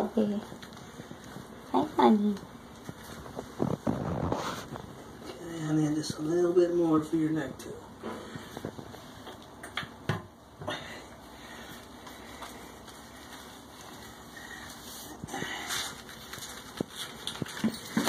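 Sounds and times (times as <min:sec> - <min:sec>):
soft rustles: 0:00.0 - 0:06.5, 0:11.3 - 0:18.0.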